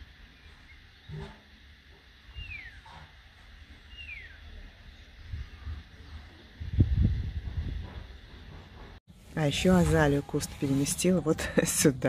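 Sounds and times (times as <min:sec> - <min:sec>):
bird whistling calls: 0:02.3 - 0:02.8, 0:03.9 - 0:04.4
wind rumbling on microphone: 0:05.0 - 0:08.6.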